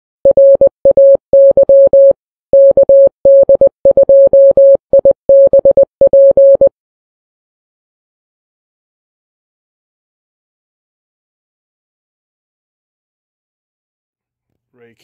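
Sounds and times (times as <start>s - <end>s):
morse code beeps: 0.3s - 6.7s.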